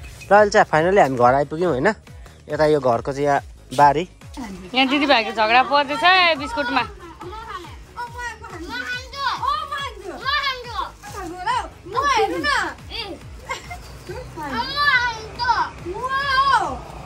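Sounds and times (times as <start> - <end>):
woman talking: 4.4 - 9.2
boy talking: 6.4 - 13.3, 14.2 - 16.8.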